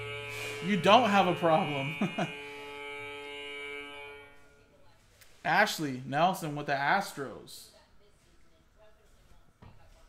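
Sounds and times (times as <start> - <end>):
droning music chord: 0.0 - 6.6
man's voice: 0.6 - 2.3, 5.5 - 7.6.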